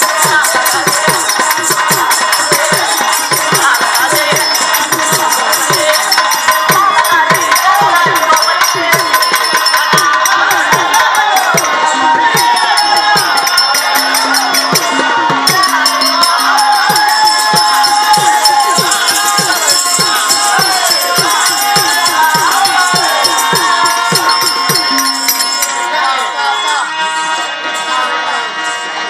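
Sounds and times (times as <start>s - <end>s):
hand drums beating: 0.0s - 26.0s
wavering melody: 11.0s - 27.5s.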